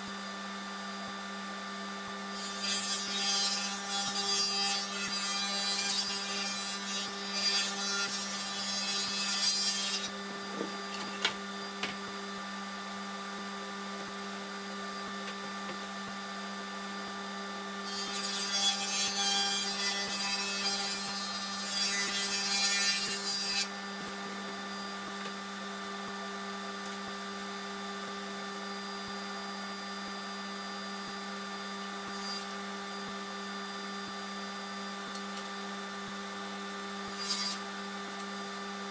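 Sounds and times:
table saw humming: 0.0 - 38.9
saw blade cutting wood: 2.3 - 11.3, 17.8 - 23.8, 32.0 - 32.6, 37.0 - 37.7.

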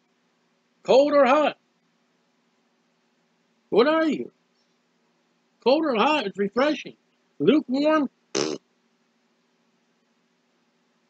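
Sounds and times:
faint steady hum: 0.0 - 11.0
man speaking: 0.9 - 1.6, 3.8 - 4.3, 5.7 - 8.1
man's raspberry mouth noise: 8.4 - 8.6.

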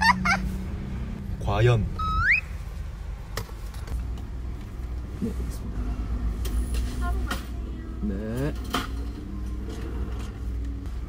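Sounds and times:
short rising whistle tone: 2.0 - 2.5.

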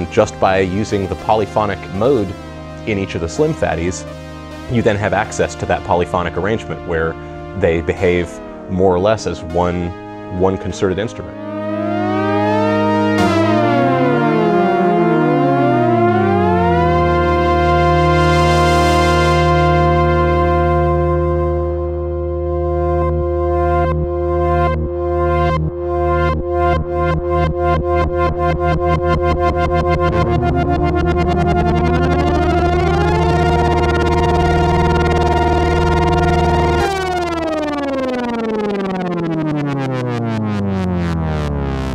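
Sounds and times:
synthesizer chord gliding: 0.0 - 41.9.

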